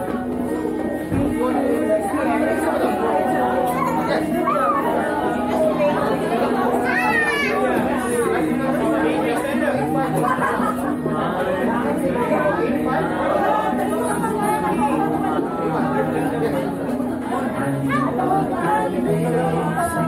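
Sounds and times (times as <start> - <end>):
many people chattering: 0.0 - 20.0.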